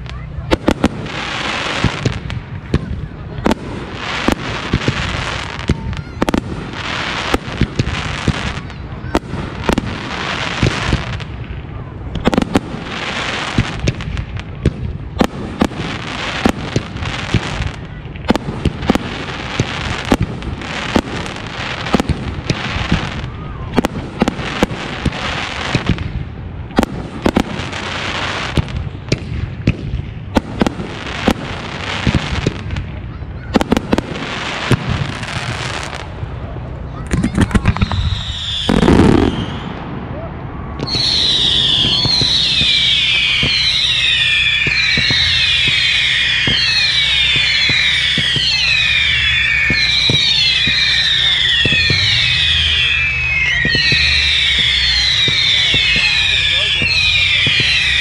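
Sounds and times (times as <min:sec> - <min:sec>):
firework bangs: 0:00.0 - 0:58.0
firework hissing: 0:37.0 - 0:39.8.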